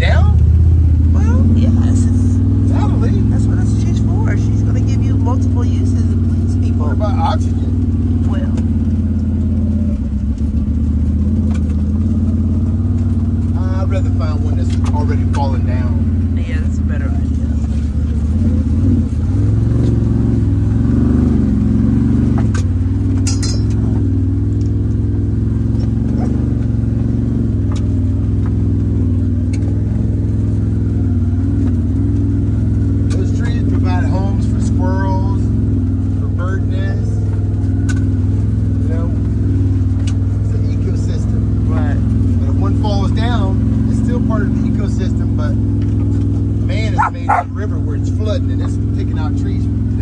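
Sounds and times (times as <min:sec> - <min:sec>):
utility vehicle engine running: 0:00.0 - 0:50.0.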